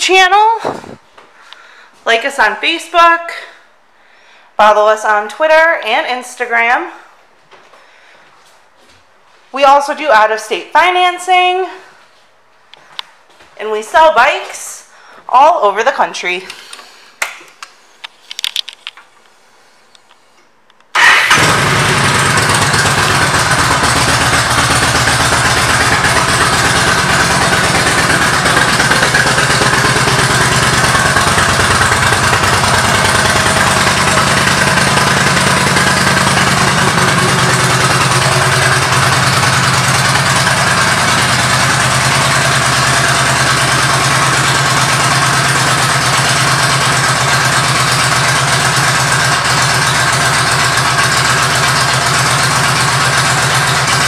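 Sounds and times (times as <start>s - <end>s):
motorcycle engine starting and idling: 20.9s - 54.0s.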